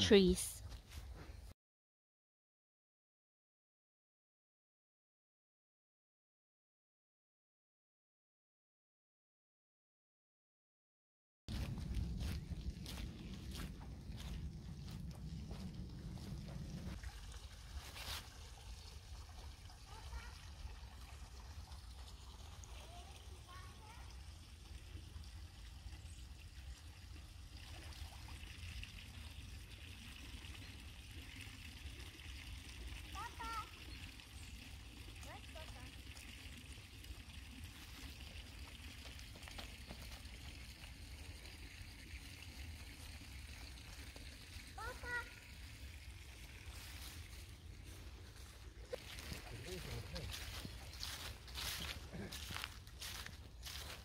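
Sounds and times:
steady low rumble: 11.5s - 17.0s
faint trickling water: 11.5s - 54.0s.

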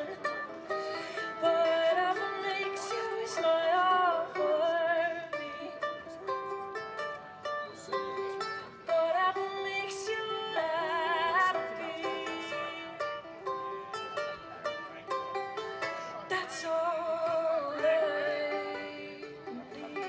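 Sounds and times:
plucked string instrument: 0.0s - 20.0s
woman singing with vibrato: 1.2s - 5.8s, 8.9s - 13.0s, 16.3s - 20.0s.

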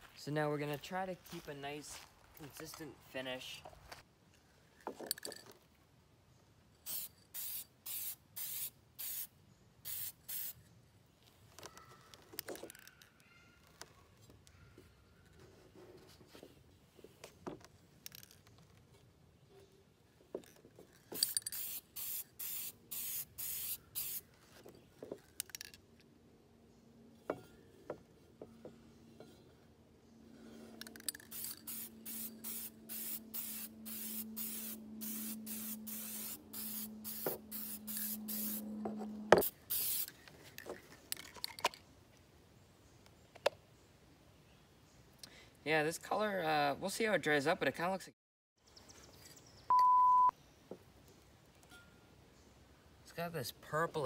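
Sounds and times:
spray paint can hissing: 6.8s - 10.6s, 21.2s - 24.3s, 30.9s - 38.7s, 39.4s - 40.2s.

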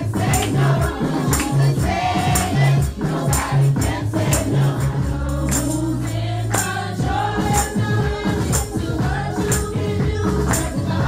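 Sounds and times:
bass line: 0.0s - 11.0s
children's choir singing: 0.0s - 11.0s
tambourine: 0.0s - 11.0s.

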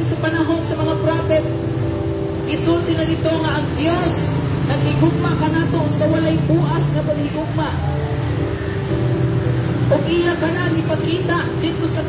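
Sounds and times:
motor tricycles passing: 0.0s - 12.0s
street traffic: 0.0s - 12.0s.

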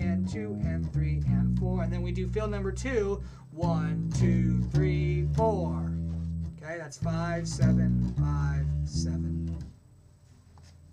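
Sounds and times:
electric guitar notes: 0.0s - 9.8s.

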